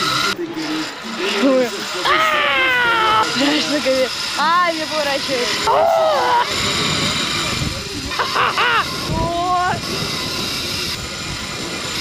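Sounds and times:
person yelling high and long: 2.0 - 3.4, 5.7 - 6.5.

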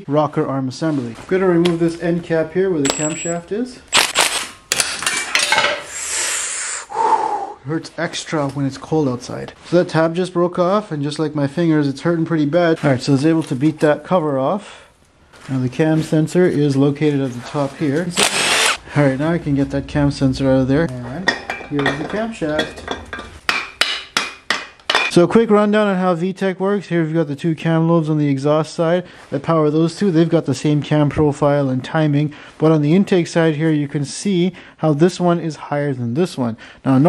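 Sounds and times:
metal-on-metal clanks: 19.9 - 25.1.

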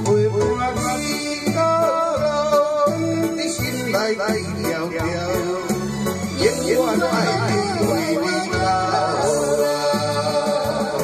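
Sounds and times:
man singing into a microphone: 0.0 - 11.0
pop backing track with guitar: 0.0 - 11.0.

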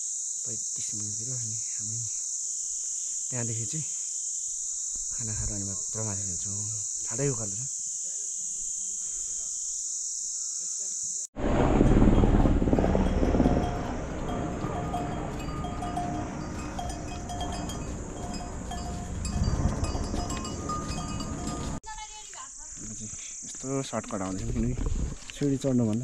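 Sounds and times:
high insect buzz: 0.0 - 11.4, 12.8 - 25.8
mule train movement noise: 11.6 - 21.8
mule neck bells clanking: 12.8 - 21.8.

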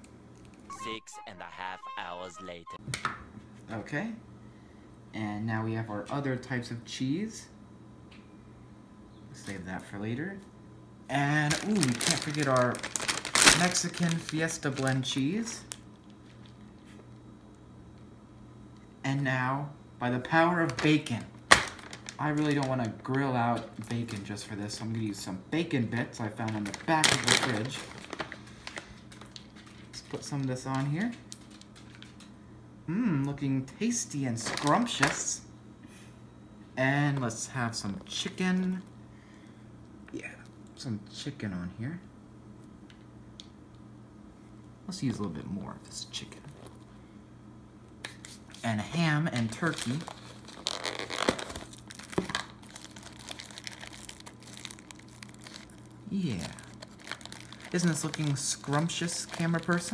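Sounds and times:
plastic packaging crinkling: 11.2 - 16.9, 20.6 - 24.9, 25.9 - 32.3, 34.4 - 35.3, 48.2 - 59.9
hand rustling in plastic bag: 11.4 - 16.5, 20.6 - 24.3, 26.2 - 32.2, 49.3 - 59.9.

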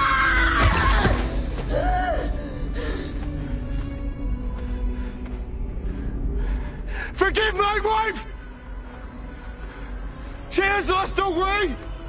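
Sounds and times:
dramatic film score: 0.0 - 12.0.

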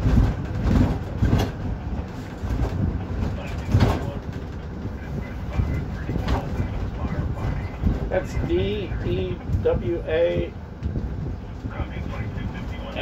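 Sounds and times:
vehicle body knocks and rattles: 0.0 - 4.9, 5.6 - 8.8
road rumble inside vehicle: 0.0 - 13.0.

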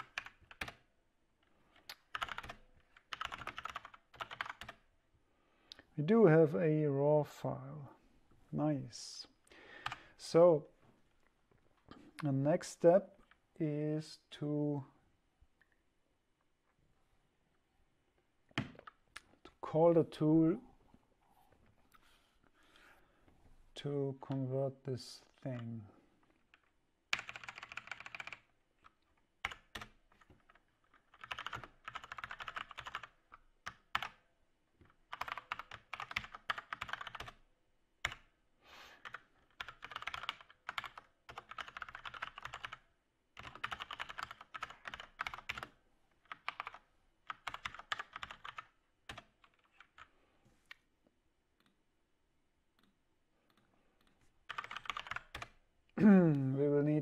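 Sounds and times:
computer keyboard typing: 0.0 - 0.8, 1.9 - 4.8, 26.5 - 34.2, 34.9 - 37.4, 38.0 - 38.3, 39.0 - 50.1, 53.5 - 55.6.

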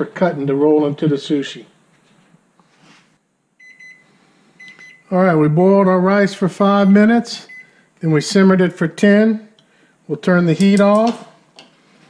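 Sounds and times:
microwave timer beeping: 3.6 - 5.1, 6.8 - 7.8.

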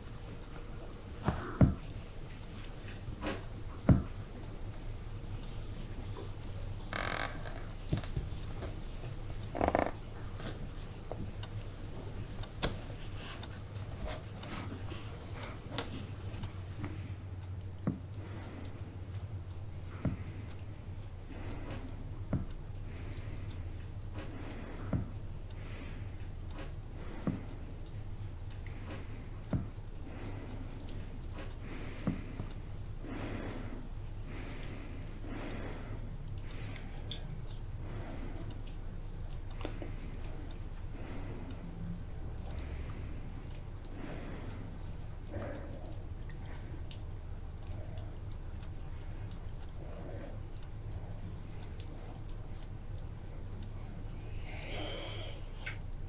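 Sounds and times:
liquid dripping: 0.0 - 56.0.

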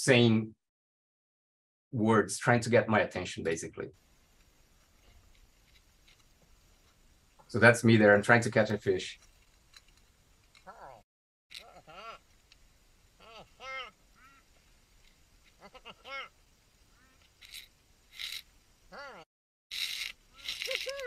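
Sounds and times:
bursts of hiss: 19.7 - 21.0.

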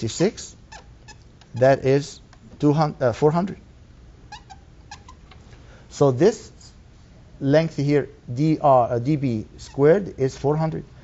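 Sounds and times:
marker squeaking on whiteboard: 0.4 - 2.2, 4.3 - 5.5, 9.6 - 10.5.

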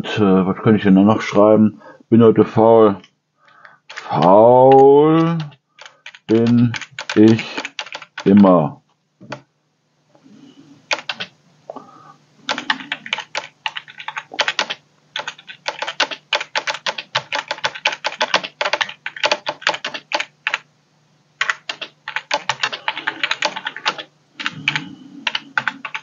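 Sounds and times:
faint steady hum: 0.0 - 26.0
keyboard typing: 3.5 - 8.4, 10.9 - 11.3, 12.5 - 20.6, 21.4 - 26.0.

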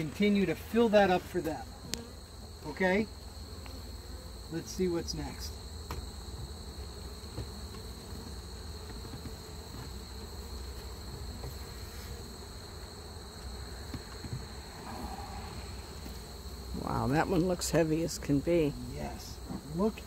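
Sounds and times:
bees buzzing: 0.0 - 20.0.

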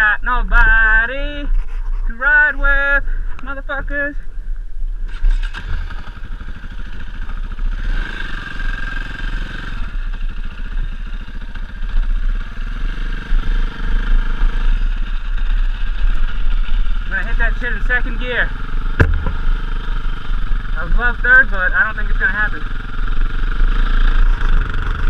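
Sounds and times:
dirt bike engine revving: 5.0 - 25.0.

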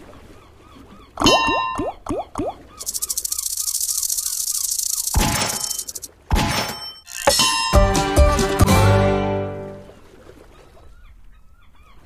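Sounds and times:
reel stop with ringing tones: 2.8 - 6.1
slot machine reels spinning: 2.8 - 6.1.

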